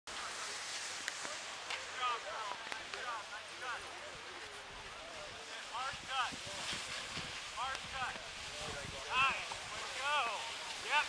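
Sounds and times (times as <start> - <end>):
board sliding on snow: 0.1 - 11.0.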